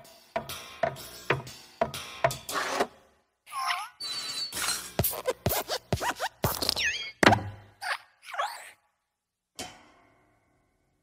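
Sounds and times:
cartoon thuds and thwacks: 0:05.0 - 0:07.7
gliding boing and squeak tones: 0:06.7 - 0:08.8.

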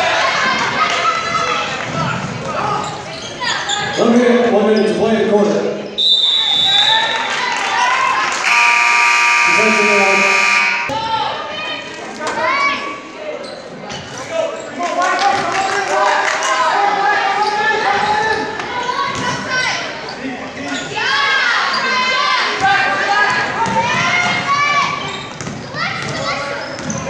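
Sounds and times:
referee's whistle: 0:06.0 - 0:07.3, 0:08.4 - 0:11.0
scoreboard buzzer: 0:08.4 - 0:10.9
people shouting: 0:08.4 - 0:11.4
basketball bouncing: 0:25.4 - 0:26.2.

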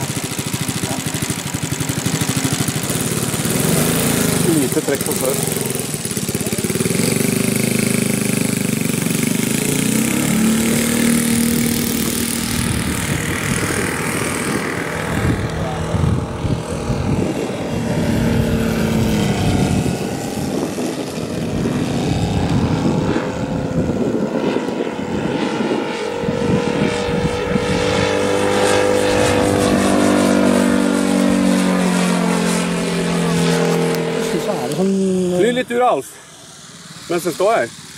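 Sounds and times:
model airplane engine: 0:00.0 - 0:37.9.

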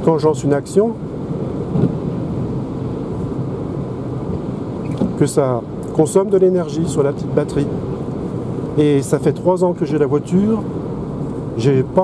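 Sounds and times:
tyre and wind rumble in car: 0:00.0 - 0:12.0.

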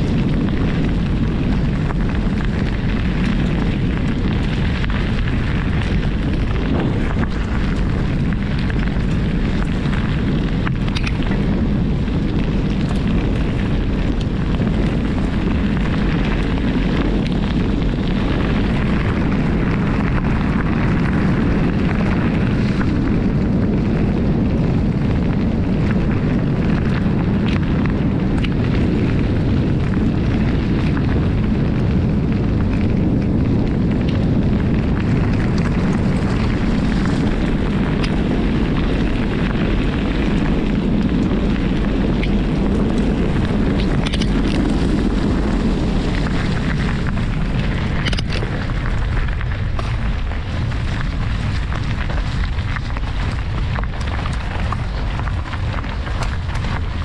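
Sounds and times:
tyres on gravel: 0:00.0 - 0:57.0
wind buffeting microphone: 0:00.0 - 0:57.0.

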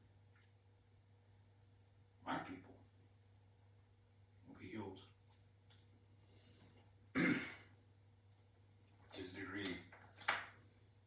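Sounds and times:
man clearing his throat: 0:07.1 - 0:07.7.

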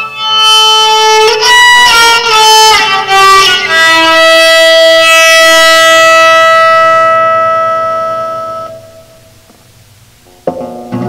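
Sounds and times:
bowed guitar string note: 0:00.5 - 0:09.5.

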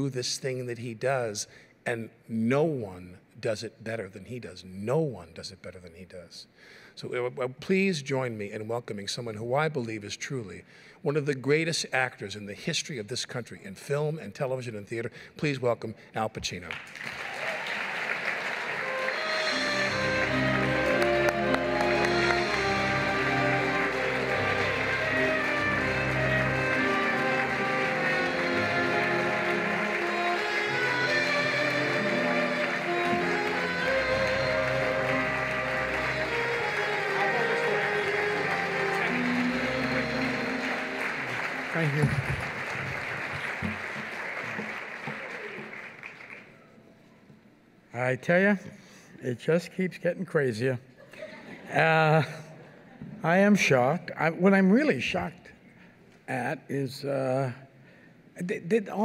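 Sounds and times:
audience applauding: 0:16.7 - 0:46.7
instrumental music: 0:18.5 - 0:45.7.

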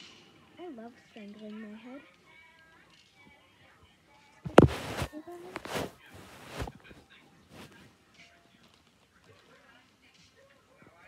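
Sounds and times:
hair rustling against microphone: 0:04.5 - 0:07.0
faint rustling: 0:04.5 - 0:07.9.

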